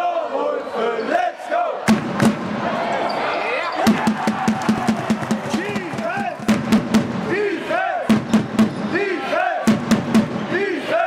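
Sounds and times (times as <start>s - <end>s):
crowd chanting and calling out: 0.0s - 11.0s
basketball bouncing on court: 3.9s - 7.2s, 8.1s - 8.8s.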